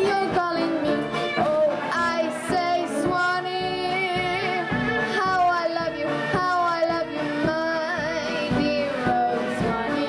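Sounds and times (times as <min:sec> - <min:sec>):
drums: 0:00.0 - 0:10.0
jazz band playing: 0:00.0 - 0:10.0
violin: 0:00.0 - 0:10.0
woman singing jazz: 0:00.0 - 0:10.0.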